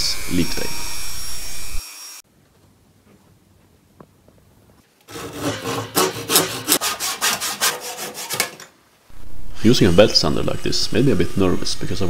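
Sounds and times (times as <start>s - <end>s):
hand saw cutting log: 5.1s - 8.6s.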